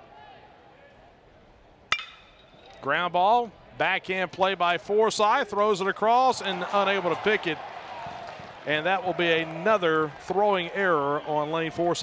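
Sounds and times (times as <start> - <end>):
metal bat hitting ball: 1.9 - 2.9.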